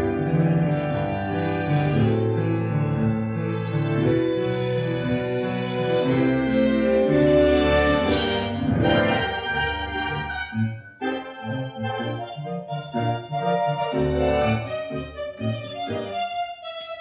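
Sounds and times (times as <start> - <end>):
tango orchestra music: 0.0 - 17.0.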